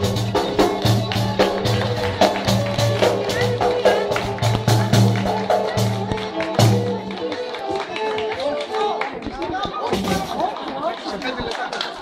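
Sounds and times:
large drum beating: 0.0 - 7.1
lute playing: 0.0 - 10.4.

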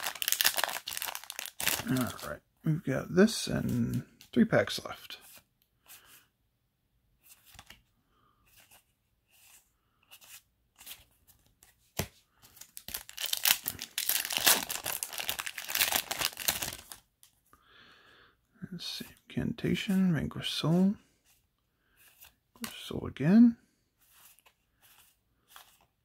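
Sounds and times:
foil wrapper crinkling and tearing: 0.0 - 2.3, 12.7 - 17.1
cards tapping and sliding: 9.4 - 12.6.

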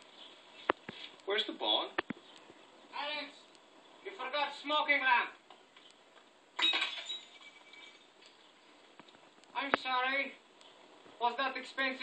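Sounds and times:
glass pieces tinkling: 6.6 - 8.1
glass smashing: 6.6 - 8.1.

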